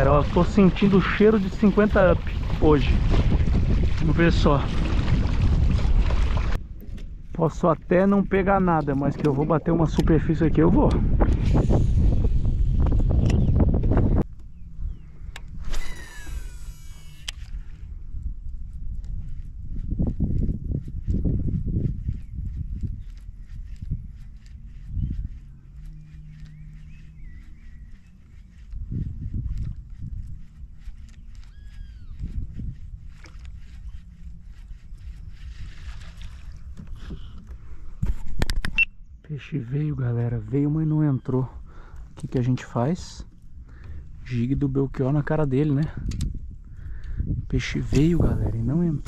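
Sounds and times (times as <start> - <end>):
water splashing and sloshing: 0.0 - 7.2, 27.9 - 38.6
fishing reel whirring: 15.5 - 17.9, 29.4 - 36.6.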